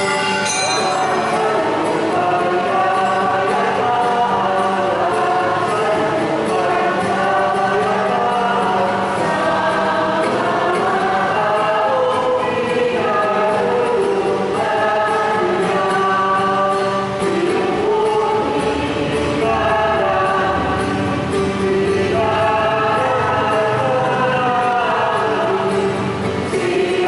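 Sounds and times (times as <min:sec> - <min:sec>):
choir singing long held notes: 0:00.0 - 0:27.0.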